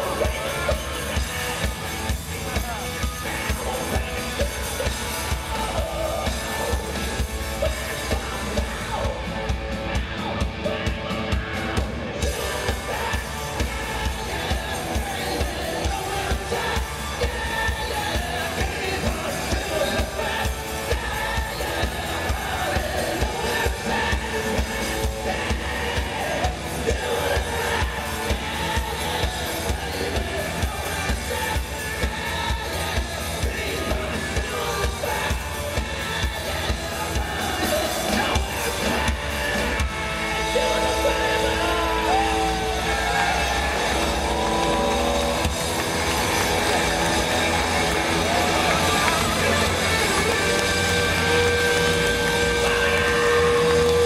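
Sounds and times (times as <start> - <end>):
distorted electric guitars: 0.0 - 54.0
live hard rock band: 0.0 - 54.0
electric guitar held notes: 40.1 - 54.0.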